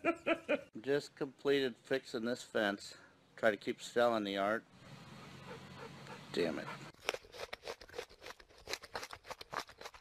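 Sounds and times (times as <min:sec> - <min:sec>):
groundhog chewing crunches: 0:06.9 - 0:10.0.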